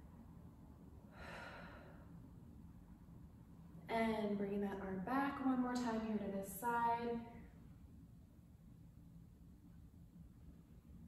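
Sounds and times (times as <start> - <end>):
faint room hum: 0.0 - 11.0
woman exhaling softly: 1.1 - 2.1.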